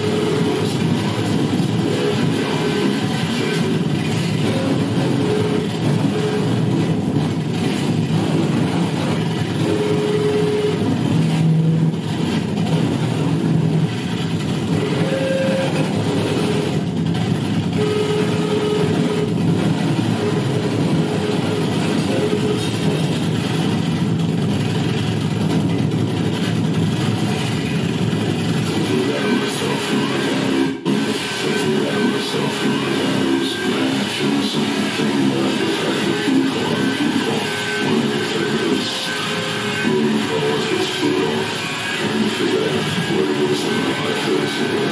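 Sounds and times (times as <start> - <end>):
distorted noise music: 0.0 - 44.9
short held tones: 14.7 - 17.0, 17.6 - 23.0.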